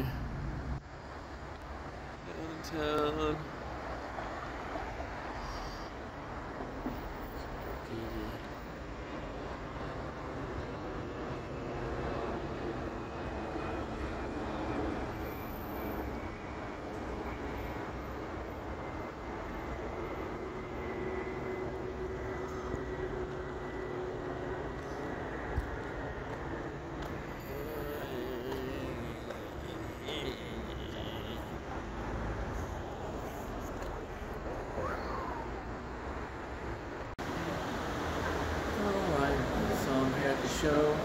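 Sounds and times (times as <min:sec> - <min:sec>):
distant vehicle engine hum: 0:00.0 - 0:41.0.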